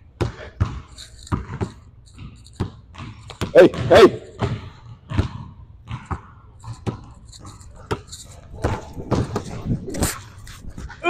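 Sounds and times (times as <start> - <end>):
basketball bouncing on wooden floor: 0.2 - 9.9.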